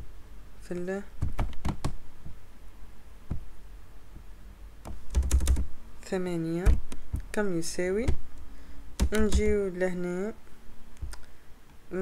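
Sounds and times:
keyboard key clicks: 0:09.0 - 0:09.6.

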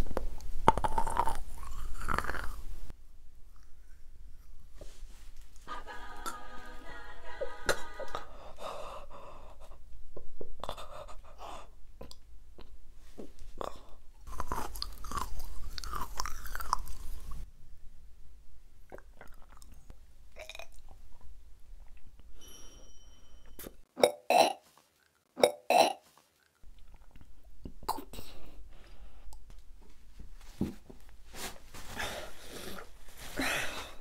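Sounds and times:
crunchy chewing clicks: 0:14.2 - 0:17.4
woman gagging and retching: 0:24.0 - 0:24.7, 0:25.4 - 0:26.1
woman gasping and breathing heavily: 0:31.9 - 0:34.0.

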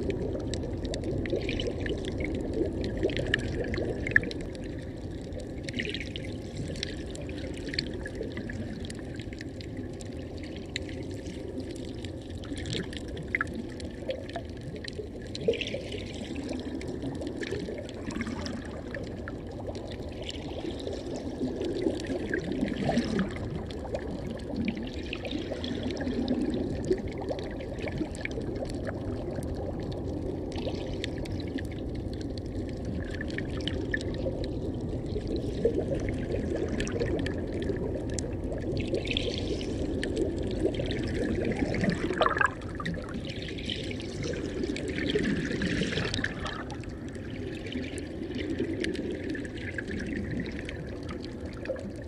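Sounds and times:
clicks and crackles: 0:00.0 - 0:06.0, 0:36.7 - 0:40.8
seawater sloshing and bubbling: 0:00.0 - 0:52.0.

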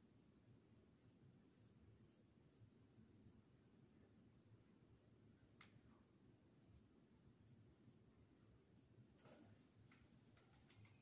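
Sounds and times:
wet brush on paper: 0:00.0 - 0:02.8, 0:06.0 - 0:09.1.

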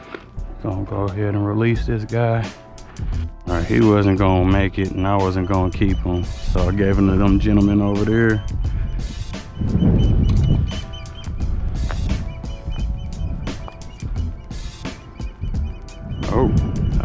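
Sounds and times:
instrumental music with drum beat: 0:00.4 - 0:17.0.

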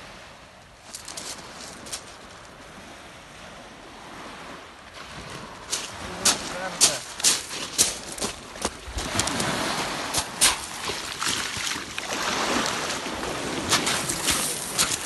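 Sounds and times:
footsteps crunching on pebbles: 0:00.8 - 0:02.3, 0:05.7 - 0:12.0, 0:13.7 - 0:15.0
surf washing over stones: 0:00.8 - 0:02.5, 0:04.0 - 0:15.0.

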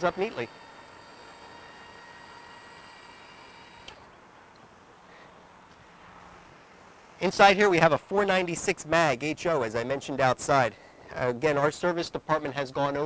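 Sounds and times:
electric lift motor whining: 0:00.0 - 0:04.2.

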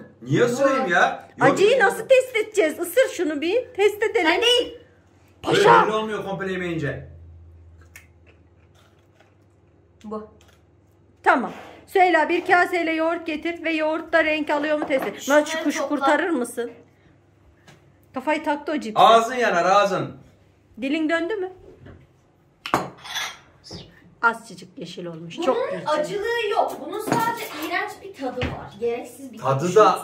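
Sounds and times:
low steady hum: 0:00.0 - 0:11.4.

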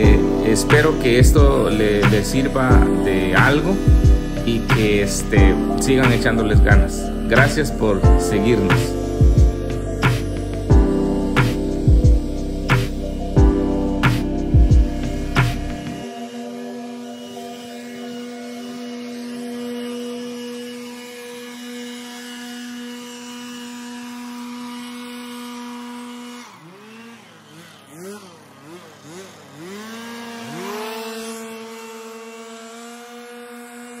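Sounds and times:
leaf blower engine revving: 0:00.0 - 0:34.0.

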